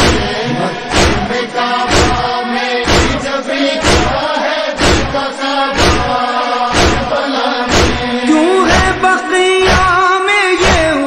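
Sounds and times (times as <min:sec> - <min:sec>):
hands striking chests: 0:00.0 - 0:04.2, 0:04.8 - 0:09.0
group of voices chanting: 0:00.0 - 0:09.9
person reciting: 0:00.0 - 0:11.0.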